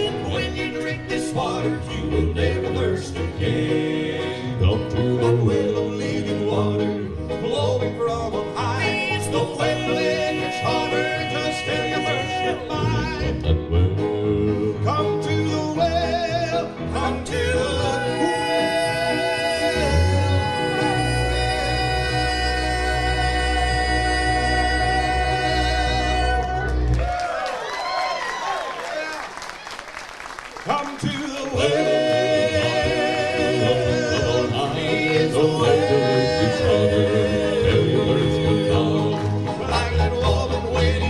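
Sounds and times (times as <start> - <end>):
gospel quartet singing in harmony: 0.0 - 27.1, 31.0 - 41.0
upright bass: 0.0 - 27.2, 31.5 - 41.0
piano: 0.0 - 29.0, 30.0 - 41.0
acoustic guitars: 31.6 - 41.0.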